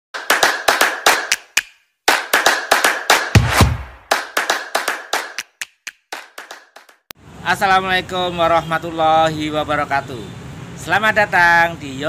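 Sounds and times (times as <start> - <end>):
sharp hand claps: 0.2 - 7.1.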